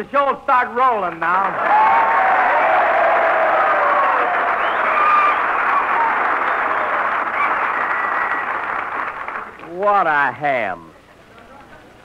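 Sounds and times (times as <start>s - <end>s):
audience applauding: 1.1s - 9.8s.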